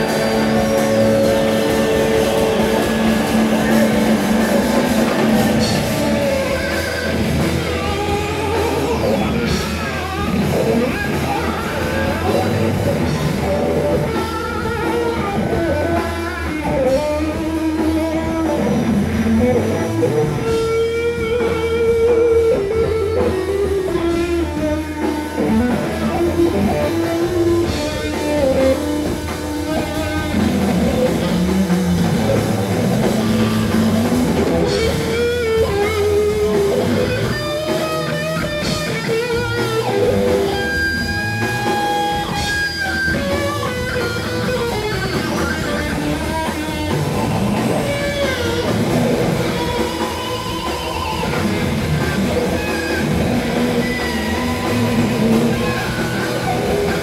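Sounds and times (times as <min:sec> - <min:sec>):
drum kit: 0:00.0 - 0:57.0
electric guitar lead: 0:00.0 - 0:57.0.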